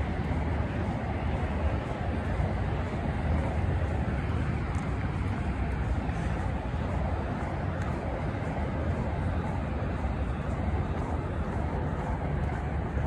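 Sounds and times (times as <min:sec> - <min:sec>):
distant road traffic hum: 0:00.0 - 0:13.0.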